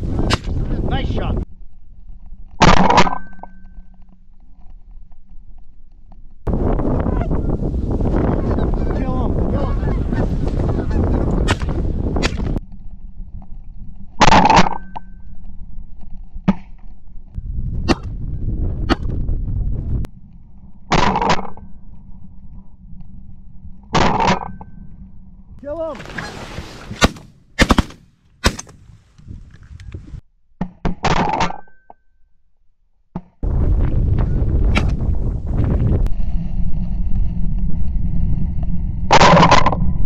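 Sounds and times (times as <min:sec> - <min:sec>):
wind noise: 0:00.0 - 0:02.6, 0:06.4 - 0:30.2, 0:33.4 - 0:40.0
geese honking: 0:08.3 - 0:11.3
shotgun blast: 0:26.9 - 0:28.8.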